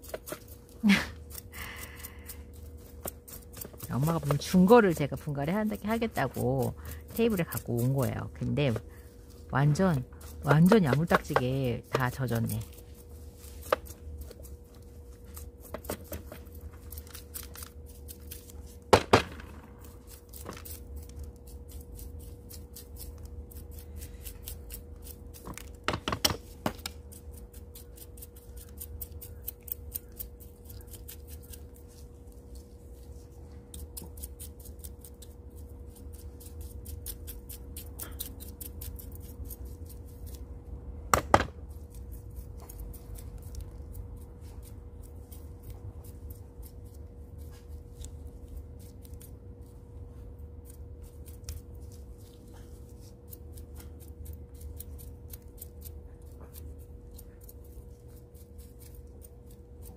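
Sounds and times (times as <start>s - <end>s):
metal tweezers scraping potting mix: 2.2s - 8.8s, 9.4s - 18.4s.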